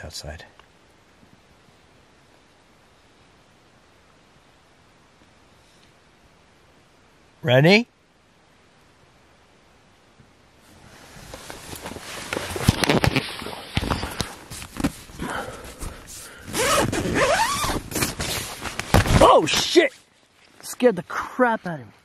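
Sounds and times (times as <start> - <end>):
tent fabric rustling: 10.7 - 20.8
tent zipper rasping: 11.5 - 19.2.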